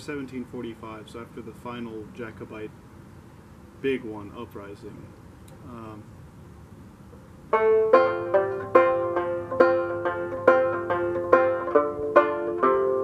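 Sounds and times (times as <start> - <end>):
banjo picking single notes: 7.5 - 13.0.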